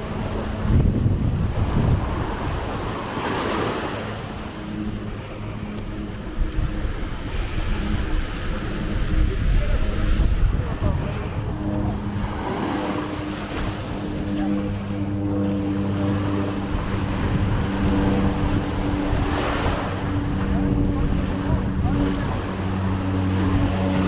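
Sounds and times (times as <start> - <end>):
low engine hum: 0.0 - 24.0
small waves washing on beach: 0.0 - 24.0
wind buffeting microphone: 0.0 - 24.0.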